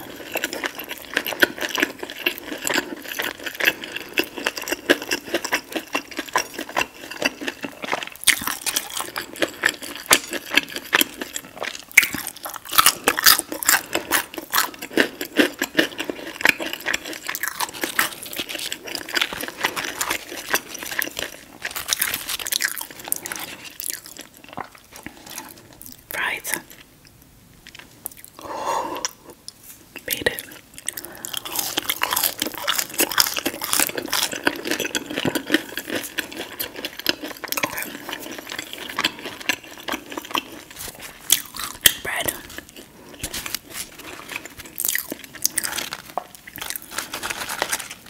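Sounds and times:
chewing crunchy fried chicken: 0.0 - 26.9, 27.6 - 48.0.

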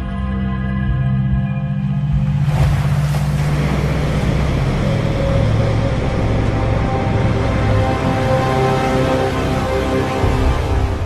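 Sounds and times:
low music drone: 0.0 - 11.0
rushing splashing water: 2.2 - 11.0.

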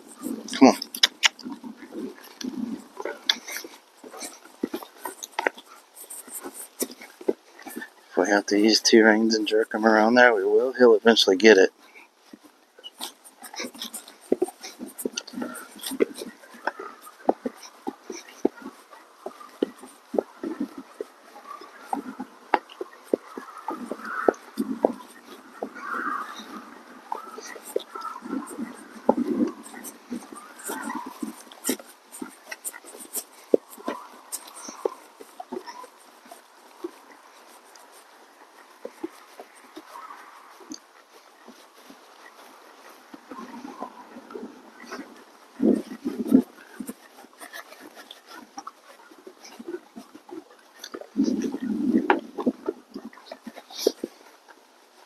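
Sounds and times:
horse tack clicking: 0.0 - 10.6, 11.5 - 55.0
hooves on packed dirt: 0.0 - 55.0.

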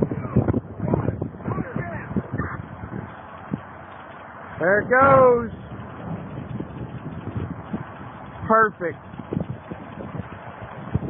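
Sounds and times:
wind buffeting microphone: 0.0 - 11.0
distant thuds and crackles: 5.6 - 11.0.

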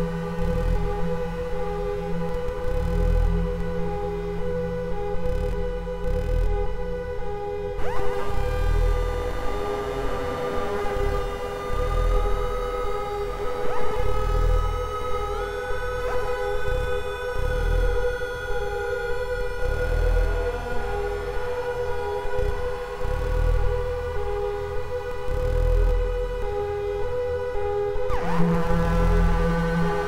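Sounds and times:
low pulsing throb: 0.0 - 30.0
synthesizer drone: 0.0 - 30.0
rising synth sweeps: 7.8 - 14.2.

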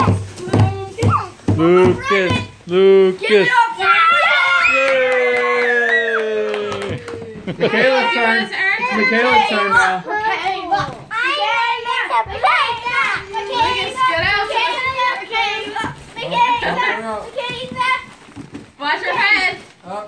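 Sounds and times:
children talking and shouting: 0.0 - 19.8.

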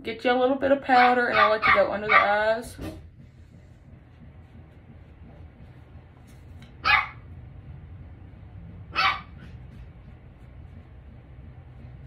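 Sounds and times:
puppy barking: 1.0 - 2.4, 6.8 - 7.3, 8.9 - 9.6.

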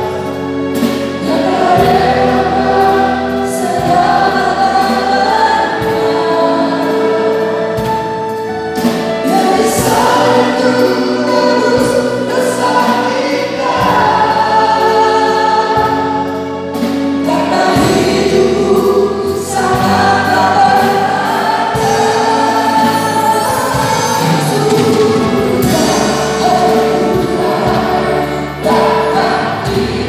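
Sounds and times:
group singing in harmony: 0.0 - 30.0
sustained bass accompaniment: 0.0 - 30.0.

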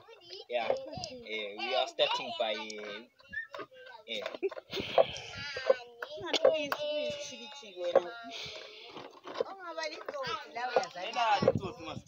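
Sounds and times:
child's voice: 0.0 - 4.1, 5.2 - 11.6
people talking: 5.0 - 12.0.

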